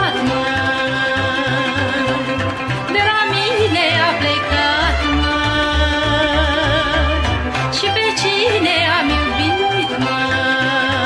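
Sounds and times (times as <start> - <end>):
folk orchestra with bass beat: 0.0 - 11.0
woman singing folk melody: 0.0 - 11.0.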